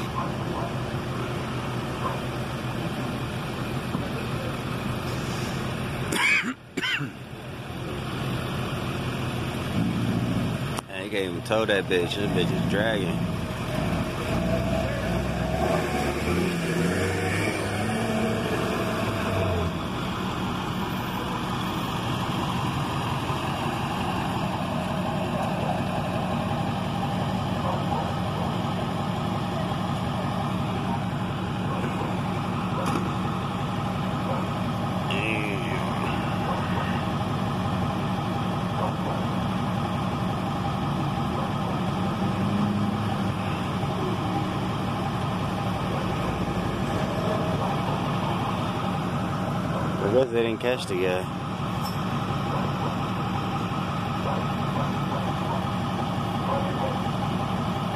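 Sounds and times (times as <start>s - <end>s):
truck engine idling: 0.0s - 57.9s.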